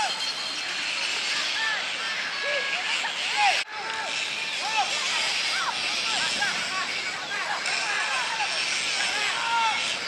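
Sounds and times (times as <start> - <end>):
players calling and shouting: 0.0 - 10.0
steady background noise: 0.0 - 10.0.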